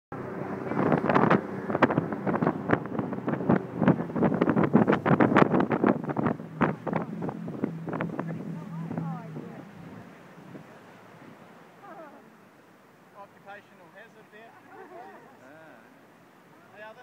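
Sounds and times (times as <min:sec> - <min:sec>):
wind buffeting microphone: 0:00.1 - 0:12.0
boat engine hum: 0:00.1 - 0:17.0.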